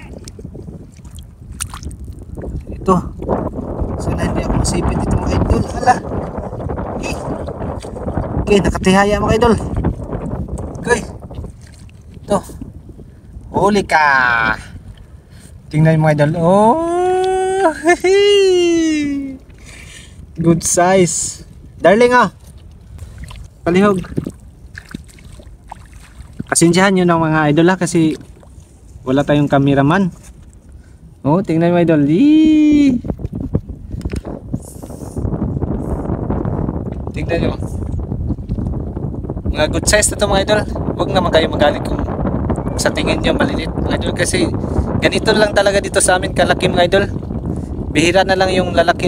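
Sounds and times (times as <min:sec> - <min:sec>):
shallow water stirred by hand: 0:00.0 - 0:03.9, 0:23.0 - 0:27.0
wind on microphone: 0:00.0 - 0:49.0.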